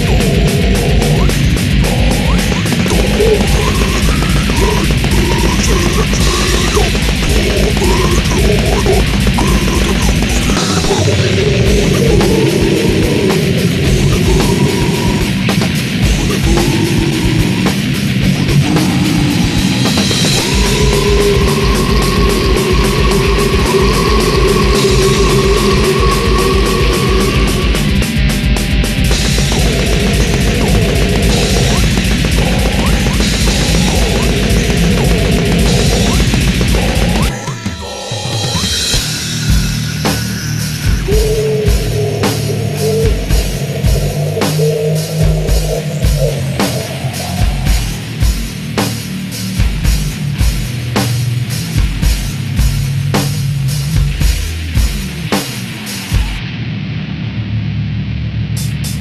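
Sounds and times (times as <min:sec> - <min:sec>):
rapid pounding low end: 0:00.0 - 0:56.9
death metal song: 0:00.0 - 0:59.0.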